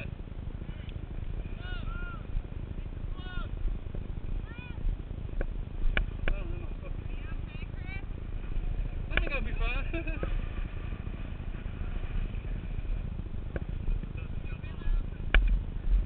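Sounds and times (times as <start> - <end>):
motorcycle engines running: 0.0 - 16.0.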